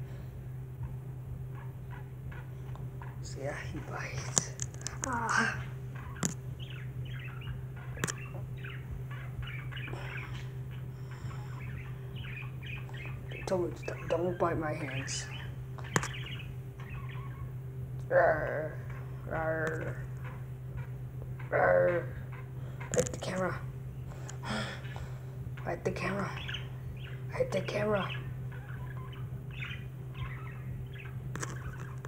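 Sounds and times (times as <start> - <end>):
low steady hum: 0.0 - 32.0
parrot chirping: 0.8 - 32.0.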